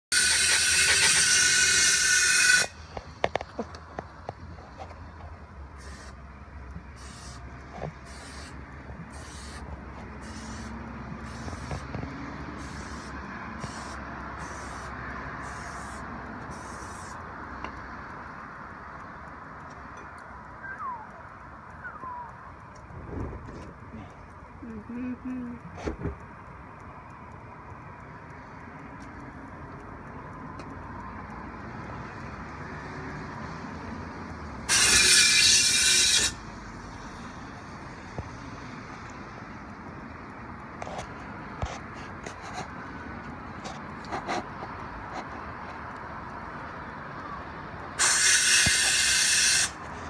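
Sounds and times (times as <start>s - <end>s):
aerosol spray can hissing: 5.8s - 6.2s, 7.0s - 7.4s, 8.0s - 9.6s, 10.2s - 11.8s, 12.6s - 17.2s.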